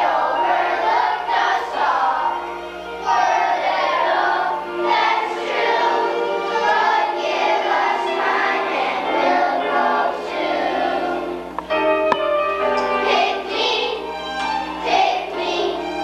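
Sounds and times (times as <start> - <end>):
children's choir singing: 0.0 - 11.6, 12.6 - 16.0.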